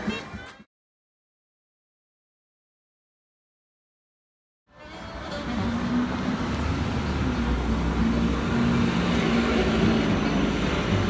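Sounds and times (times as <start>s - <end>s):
street traffic rumble: 4.7s - 11.0s
bus engine humming: 4.8s - 11.0s.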